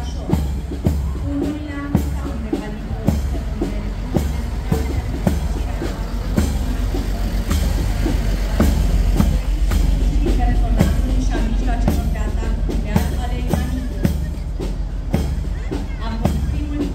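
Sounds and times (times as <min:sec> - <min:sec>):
military march music: 0:00.0 - 0:16.9
truck engine rumble: 0:00.0 - 0:16.9.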